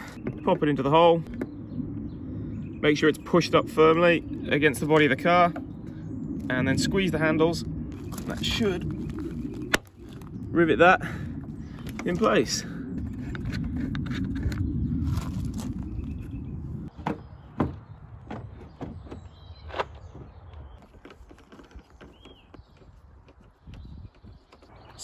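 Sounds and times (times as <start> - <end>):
steady low rumble: 0.0 - 19.6.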